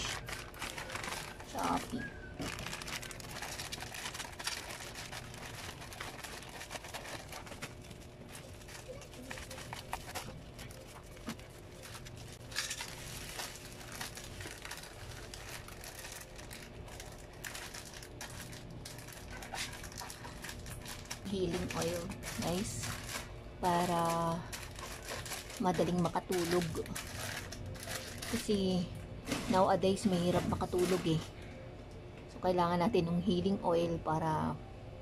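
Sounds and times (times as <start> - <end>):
plastic and bubble wrap crinkling: 0.0 - 31.3.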